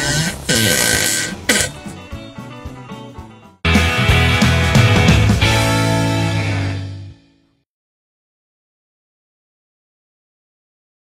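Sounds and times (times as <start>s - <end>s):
background music: 0.0s - 7.6s.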